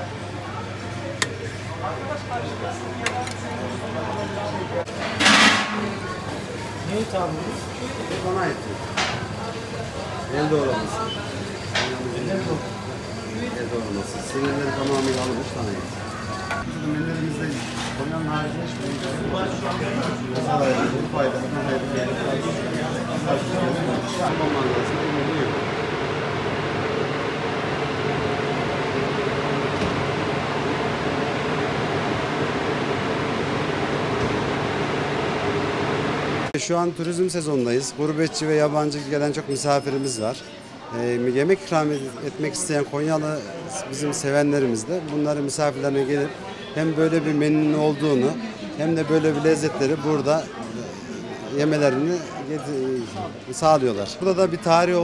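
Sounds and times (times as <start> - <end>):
kitchen background noise: 0.0 - 25.5, 36.5 - 55.0
fan-like machine noise: 0.0 - 55.0.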